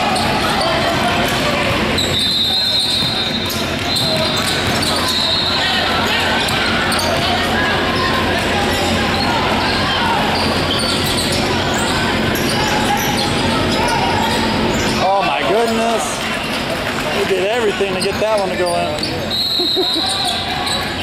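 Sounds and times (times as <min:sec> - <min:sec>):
crowd chatter: 0:00.0 - 0:21.0
basketballs bouncing on hardwood: 0:02.9 - 0:05.0.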